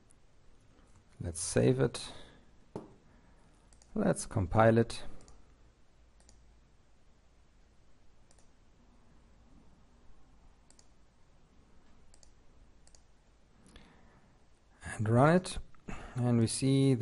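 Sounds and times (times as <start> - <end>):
computer mouse clicks: 3.7 - 4.0, 6.2 - 6.5, 8.2 - 8.6, 10.6 - 11.0, 11.8 - 13.8.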